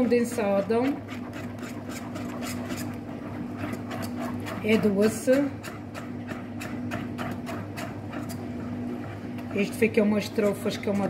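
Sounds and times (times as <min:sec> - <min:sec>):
steady low hum: 0:00.0 - 0:11.0
whisk beating cream in a pan: 0:00.0 - 0:11.0.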